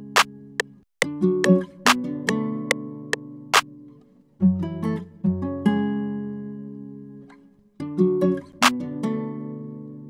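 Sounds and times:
guitar loop in a beat: 0.0s - 3.8s, 8.0s - 9.1s.

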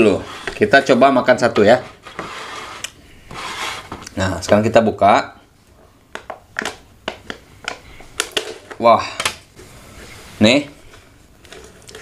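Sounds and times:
canisters scraping on plastic tray: 0.0s - 4.0s.

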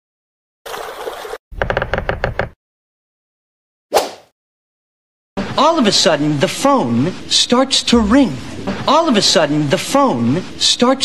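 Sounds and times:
low rumble: 7.8s - 9.8s.

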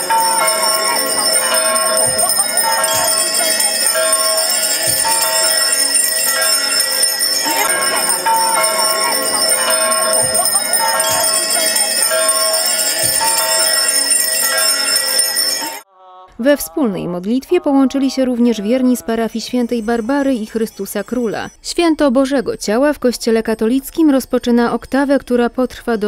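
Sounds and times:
handheld bells jingling: 0.0s - 15.8s
voices: 0.0s - 26.0s.

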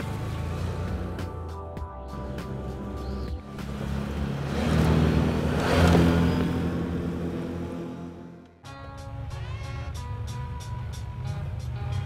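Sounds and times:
atv engine driving past: 2.2s - 8.4s.

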